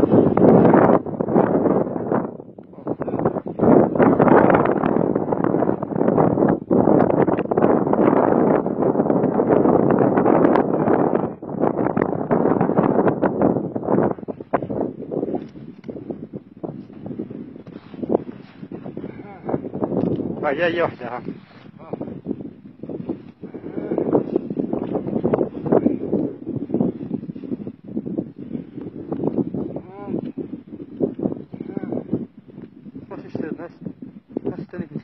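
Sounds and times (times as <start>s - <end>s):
wind buffeting microphone: 0.0s - 35.0s.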